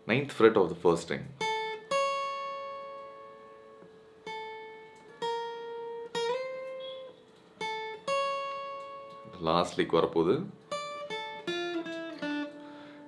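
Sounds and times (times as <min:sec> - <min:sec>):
acoustic guitar single notes: 0:01.2 - 0:13.0.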